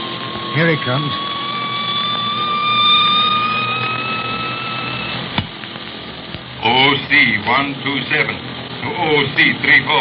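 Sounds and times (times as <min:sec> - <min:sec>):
high steady radio whistle: 0:00.0 - 0:05.6
radio background hiss: 0:00.0 - 0:10.0.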